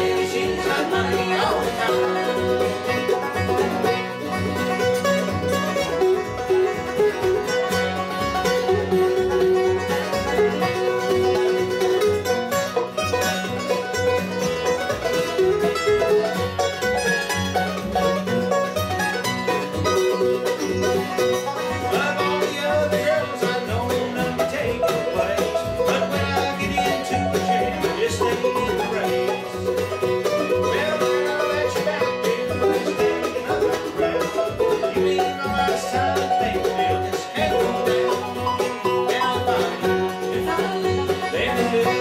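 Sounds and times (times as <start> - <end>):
banjo: 0.0 - 42.0
bluegrass band playing: 0.0 - 42.0.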